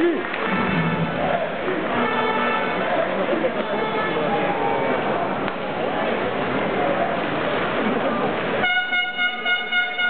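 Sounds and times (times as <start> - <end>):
arena crowd noise: 0.0 - 10.0
horn holding a steady note: 0.3 - 3.0, 8.6 - 10.0.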